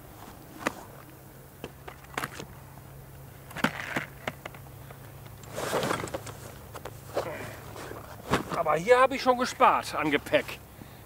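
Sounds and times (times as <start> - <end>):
clicks and knocks of tackle: 5.2 - 8.8
bag fabric rustling: 5.4 - 8.8.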